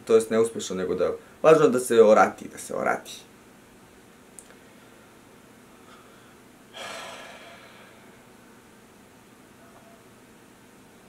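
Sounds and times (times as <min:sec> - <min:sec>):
person breathing loudly: 0:05.8 - 0:08.3.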